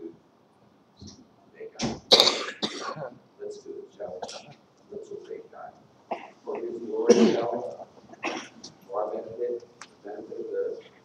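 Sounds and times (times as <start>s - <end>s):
man speaking: 2.8s - 8.0s, 8.8s - 11.0s.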